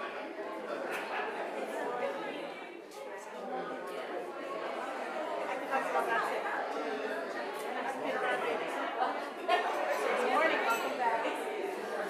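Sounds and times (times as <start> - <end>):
many voices talking in echoing hall: 0.0 - 12.0.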